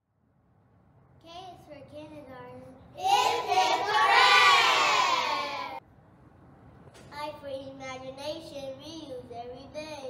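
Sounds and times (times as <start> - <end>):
children shouting a cheer: 3.0 - 5.8.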